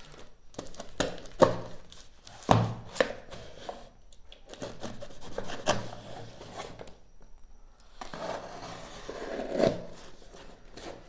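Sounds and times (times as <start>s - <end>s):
cardboard rubbing and scraping: 8.1s - 11.0s.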